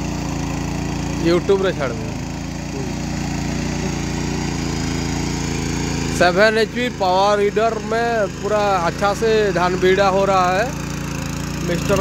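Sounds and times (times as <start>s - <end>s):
small petrol engine running: 0.0s - 12.0s
tines churning through mud: 0.0s - 12.0s.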